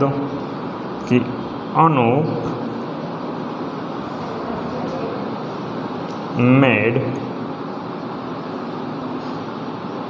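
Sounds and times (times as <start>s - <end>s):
air conditioning hiss: 0.0s - 10.0s.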